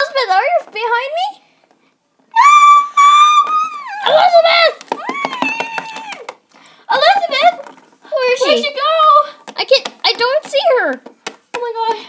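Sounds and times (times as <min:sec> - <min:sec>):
children screaming: 0:02.3 - 0:06.3.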